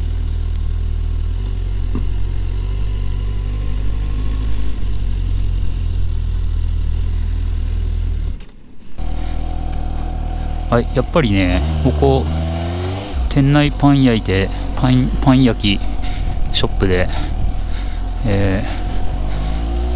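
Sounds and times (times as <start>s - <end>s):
motorcycle engine idling: 0.0s - 8.3s, 9.0s - 19.9s.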